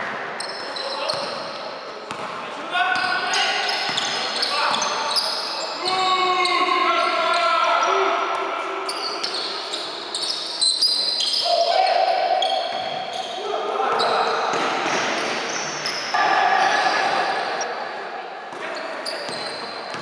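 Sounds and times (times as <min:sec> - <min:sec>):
sneakers squeaking on court: 0:00.4 - 0:07.4, 0:08.9 - 0:11.7, 0:12.3 - 0:16.2, 0:18.5 - 0:20.0.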